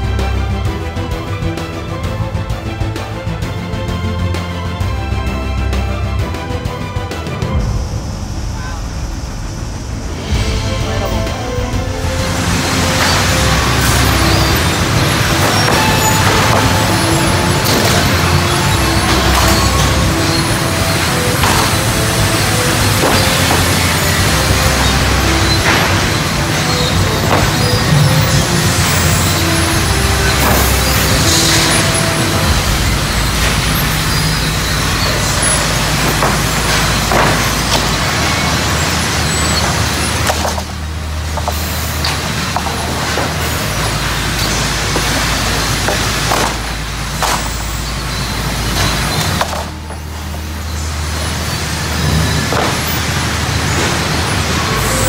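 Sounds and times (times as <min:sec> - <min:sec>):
sawmill machinery noise: 0:00.0 - 0:55.0
boards clattering on chains: 0:12.2 - 0:55.0.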